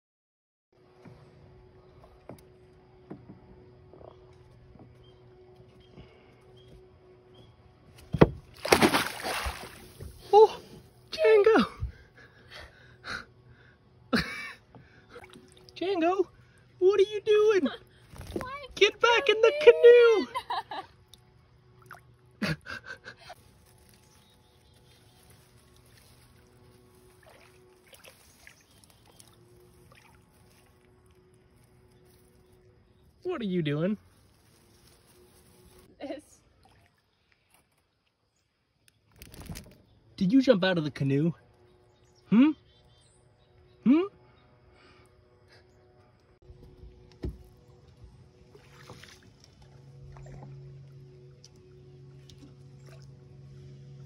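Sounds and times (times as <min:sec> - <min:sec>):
low steady hum: 0:00.8 - 0:37.6, 0:39.4 - 0:54.0
water swishing around canoe: 0:08.3 - 0:11.0, 0:24.8 - 0:31.3, 0:47.2 - 0:53.4.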